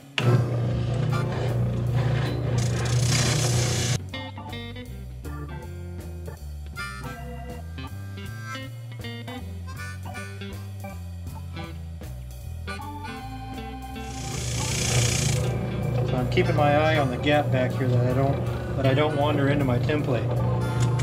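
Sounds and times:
background music with bass line: 0:00.0 - 0:21.0
spindle sander sanding wood: 0:01.2 - 0:04.0, 0:14.0 - 0:15.6.

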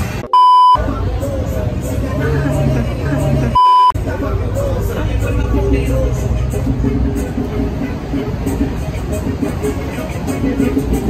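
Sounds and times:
vehicle low rumble: 0:00.8 - 0:11.0.

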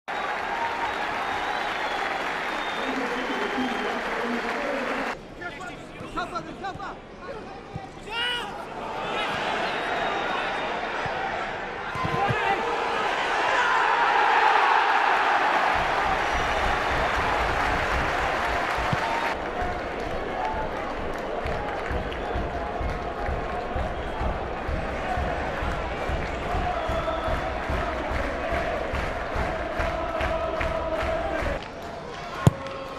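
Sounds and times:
stadium crowd applauding: 0:00.1 - 0:05.2, 0:12.0 - 0:32.9
crowd shouting: 0:08.1 - 0:31.6.

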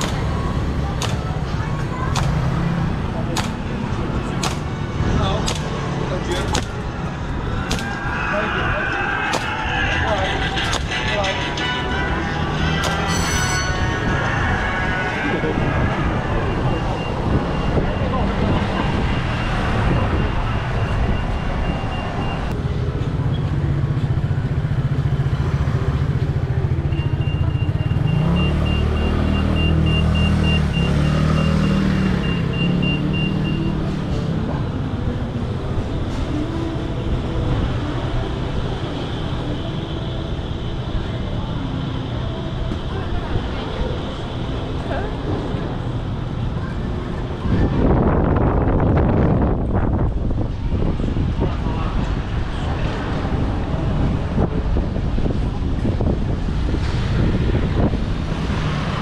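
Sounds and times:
passers-by talking: 0:00.0 - 0:59.0
vehicle engine hum: 0:00.0 - 0:59.0
vehicles passing: 0:00.0 - 0:59.0.

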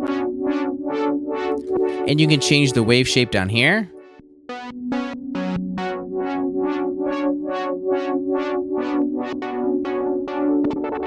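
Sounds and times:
pulsing filtered synthesizer chord: 0:00.0 - 0:02.0, 0:04.0 - 0:11.0.

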